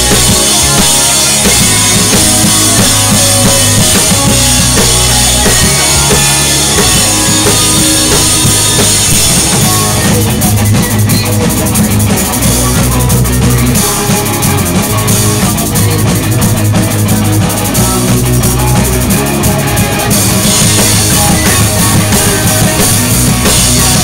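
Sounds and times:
drum kit: 0:00.0 - 0:24.0
electric guitars: 0:00.0 - 0:24.0
pop-punk band playing live: 0:00.0 - 0:24.0.

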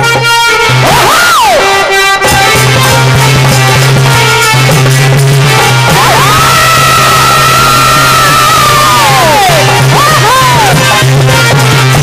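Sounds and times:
singer holding high cry: 0:00.6 - 0:02.0, 0:05.7 - 0:11.2.

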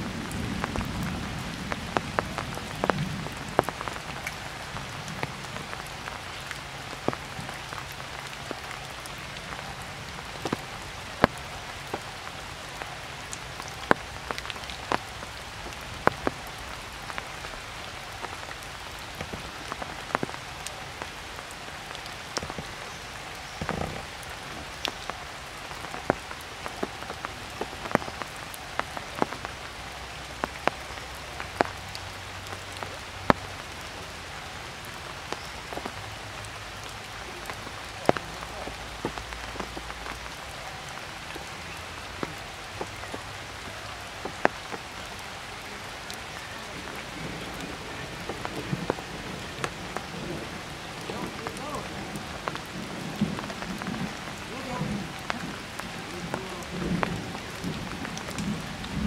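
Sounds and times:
rain falling: 0:00.0 - 0:59.0.

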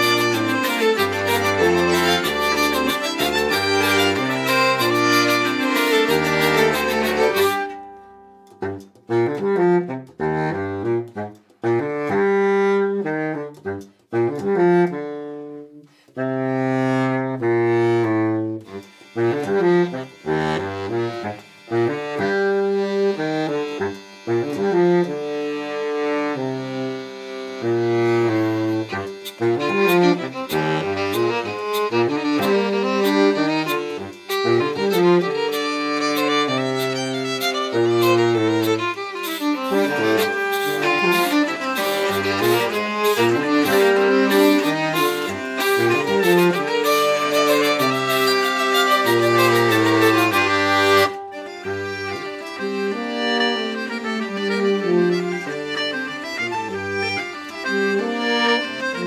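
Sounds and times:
folk band playing: 0:00.0 - 0:11.9, 0:17.7 - 0:59.0
steady ticking beat: 0:00.0 - 0:15.0, 0:27.4 - 0:59.0.

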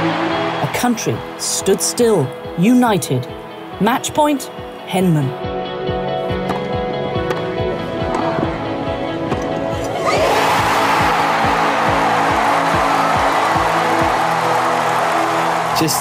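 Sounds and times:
crowd cheering: 0:00.0 - 0:01.7, 0:09.9 - 0:16.0.

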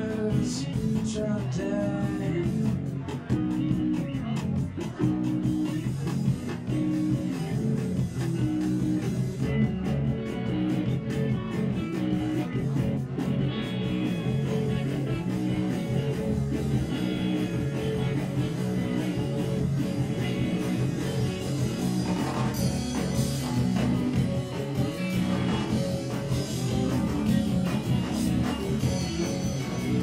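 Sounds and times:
rock band playing live: 0:00.0 - 0:30.0.

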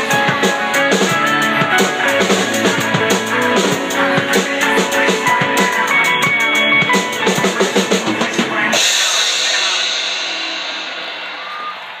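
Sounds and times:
drum strokes: 0:00.0 - 0:12.0.

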